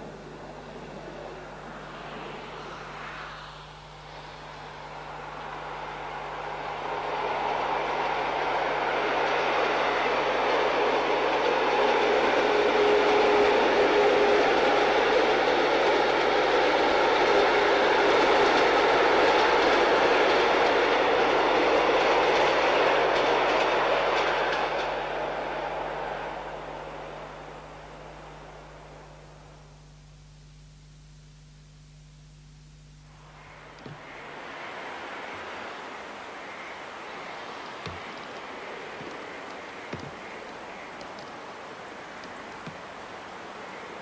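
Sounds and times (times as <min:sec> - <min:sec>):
train wheels on rails: 0:04.3 - 0:28.6, 0:33.8 - 0:44.0.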